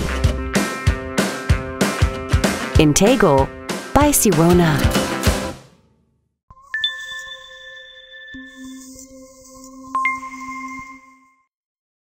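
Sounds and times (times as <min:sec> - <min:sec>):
electronic chime tones: 0:06.5 - 0:11.5.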